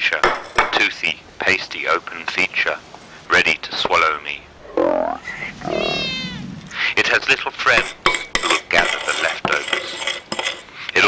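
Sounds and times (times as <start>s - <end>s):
wavering meow-like cries: 4.6s - 6.8s.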